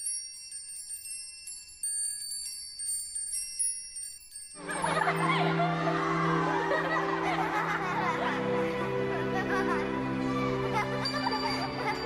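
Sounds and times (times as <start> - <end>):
high bright chimes tinkling: 0.0 - 8.0, 9.6 - 12.0.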